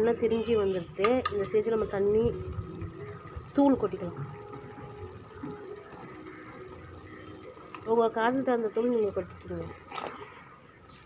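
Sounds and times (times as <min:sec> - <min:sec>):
gravy bubbling with small pops: 0:00.4 - 0:10.8.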